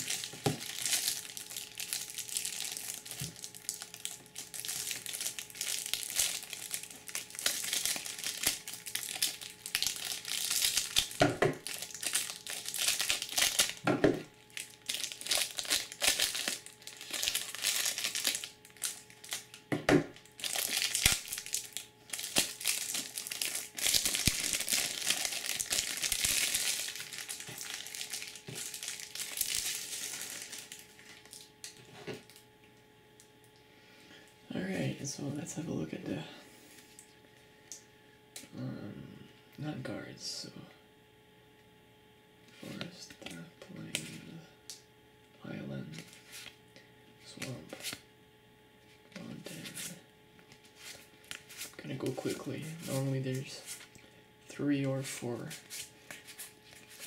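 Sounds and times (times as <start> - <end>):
plastic shrink-wrap crinkling: 0.0 - 13.8, 14.4 - 19.6, 20.2 - 32.4, 50.5 - 54.0.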